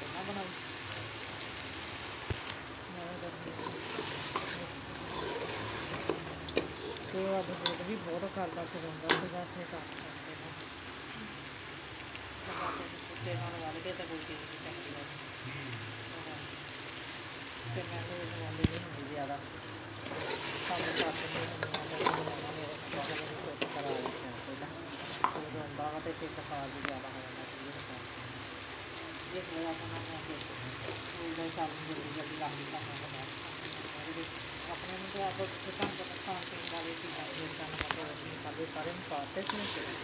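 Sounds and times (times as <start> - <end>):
curry sizzling in a pot: 0.0 - 40.0
metal spoon stirring: 3.5 - 7.9, 20.0 - 25.4.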